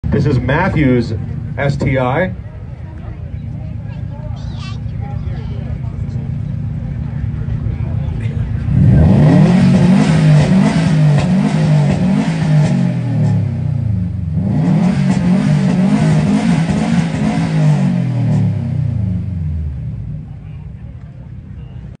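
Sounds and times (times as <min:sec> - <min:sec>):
car engine idling and revving: 0:00.0 - 0:22.0.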